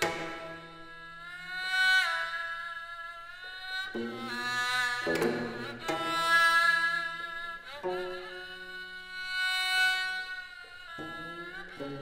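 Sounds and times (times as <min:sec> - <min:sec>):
bowed fiddle note: 0:00.0 - 0:12.0
plucked string note: 0:04.0 - 0:06.3.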